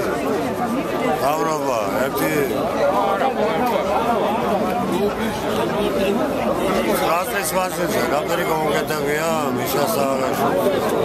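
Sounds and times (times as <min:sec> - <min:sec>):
people talking: 0:00.0 - 0:11.0
street crowd chatter: 0:00.0 - 0:11.0.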